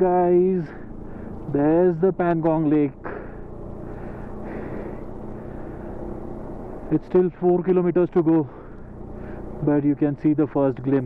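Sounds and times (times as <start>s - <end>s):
motorcycle engine cruising: 0.0s - 11.0s
rush of riding wind: 0.0s - 11.0s.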